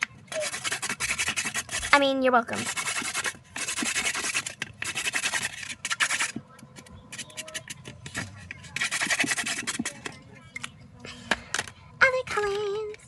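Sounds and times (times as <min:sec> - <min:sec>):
marker scratching on cardboard: 0:00.3 - 0:10.2.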